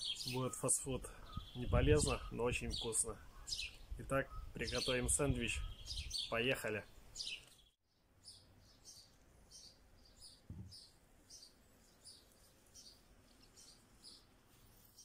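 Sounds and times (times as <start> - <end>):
faint bird chirping: 0.0 - 15.0.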